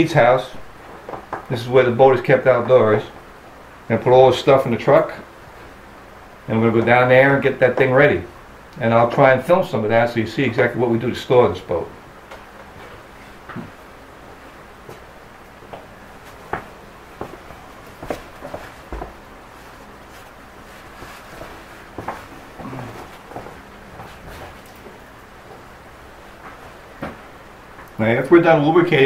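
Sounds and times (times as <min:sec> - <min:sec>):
footsteps: 0:14.8 - 0:28.0.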